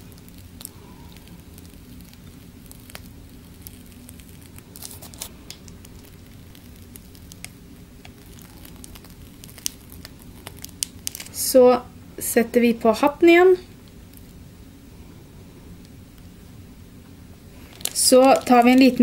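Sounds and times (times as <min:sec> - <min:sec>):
cream squishing: 0:00.0 - 0:11.4, 0:17.5 - 0:19.0
piping bag crinkling: 0:00.0 - 0:11.6, 0:12.5 - 0:14.5, 0:17.5 - 0:19.0
low steady hum: 0:00.0 - 0:19.0.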